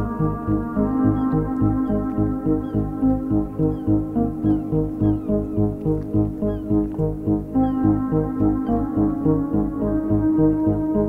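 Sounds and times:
background music with sustained chords: 0.0 - 11.0.

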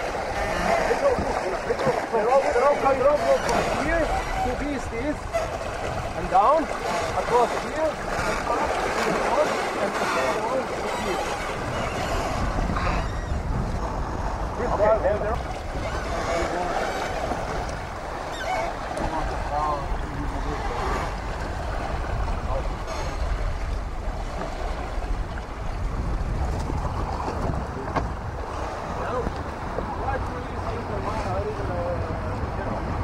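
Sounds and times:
water rushing along hull: 0.0 - 33.0
wind on microphone: 0.0 - 33.0.

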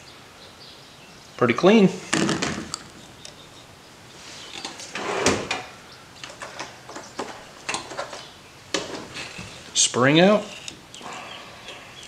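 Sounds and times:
small parts rustling and scraping: 4.2 - 12.0.

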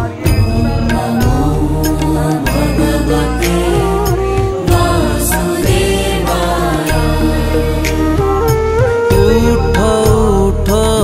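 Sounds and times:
chanted singing: 0.0 - 11.0.

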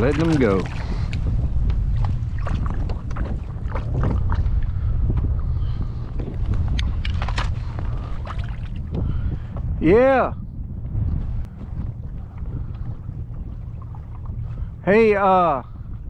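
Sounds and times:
wind rumbling on microphone: 0.0 - 16.0
kayak clicks and knocks: 6.2 - 7.6.

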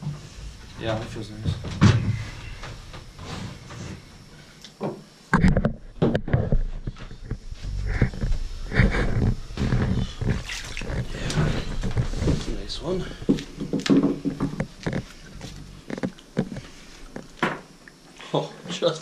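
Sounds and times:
clicks and knocks on plywood floor: 13.2 - 17.7.

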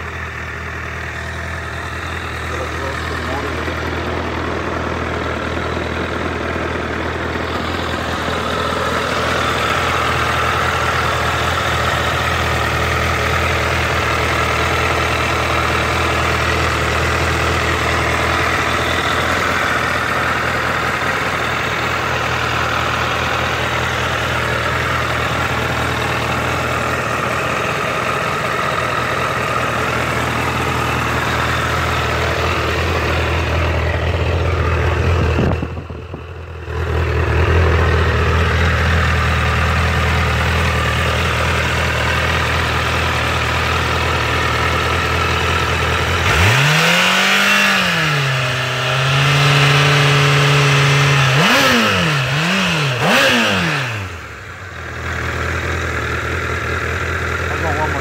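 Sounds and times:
motorcycle engine idling and revving: 0.0 - 58.0.

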